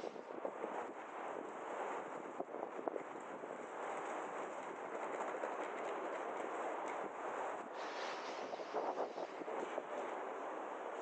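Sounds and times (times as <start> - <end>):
city background hiss: 7.7 - 9.9.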